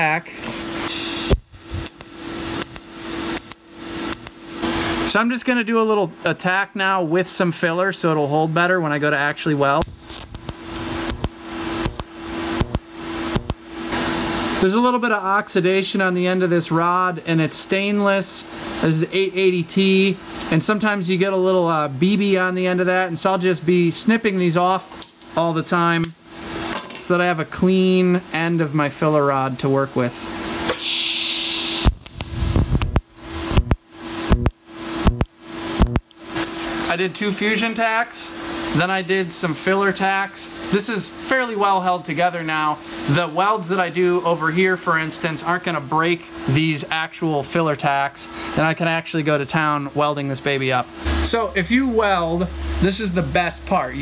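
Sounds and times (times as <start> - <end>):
steady hum: 0.0 - 24.4, 30.0 - 54.0
welding arc hissing: 0.8 - 5.1, 9.8 - 14.6, 30.7 - 36.6
sharp clicks: 1.3 - 4.4, 9.8 - 13.6, 31.8 - 36.2.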